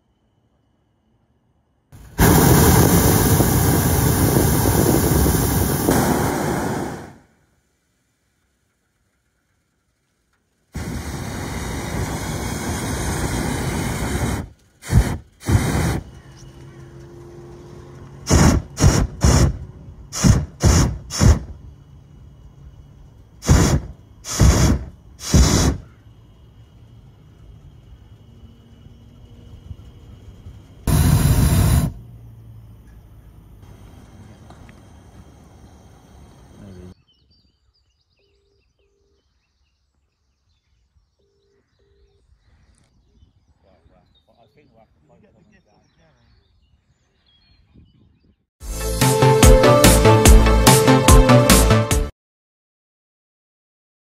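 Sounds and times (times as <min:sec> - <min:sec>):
propane burner blasts: 0:02.0 - 0:32.2, 0:33.6 - 0:37.0.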